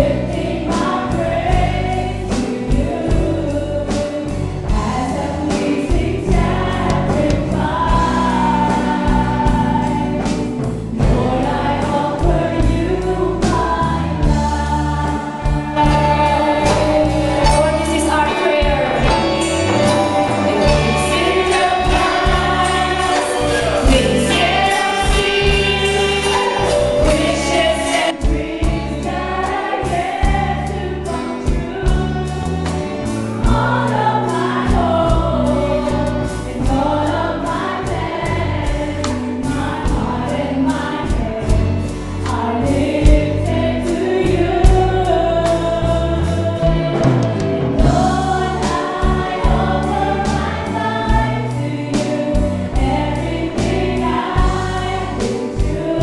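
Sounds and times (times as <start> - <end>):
woman singing lead: 0.0 - 32.8, 33.4 - 56.0
backing singers: 0.0 - 56.0
drum kit steady beat: 0.0 - 56.0
guitars: 0.0 - 56.0
keyboard: 0.0 - 56.0.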